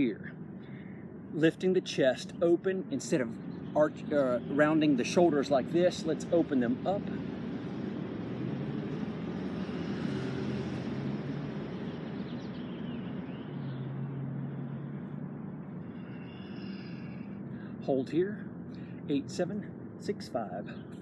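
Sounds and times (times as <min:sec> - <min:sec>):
distant motor traffic: 0:00.0 - 0:21.0
low engine hum: 0:00.0 - 0:21.0.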